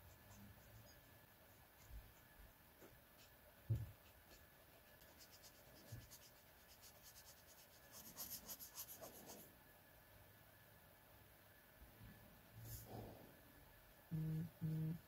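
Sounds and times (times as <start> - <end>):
marker scratching on paper: 4.0 - 9.4.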